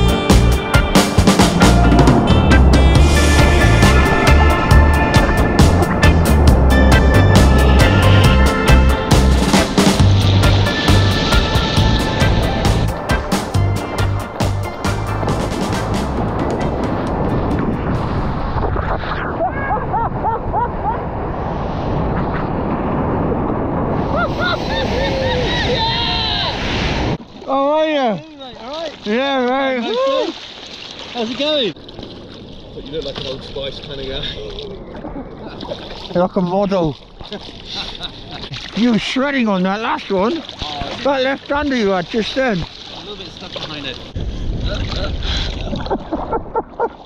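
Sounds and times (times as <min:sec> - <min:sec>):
background music with drum beat: 0:00.0 - 0:17.2
breaking whitewater rushing: 0:01.1 - 0:19.5
people whooping and laughing: 0:19.2 - 0:21.1, 0:24.0 - 0:26.6, 0:29.8 - 0:30.4.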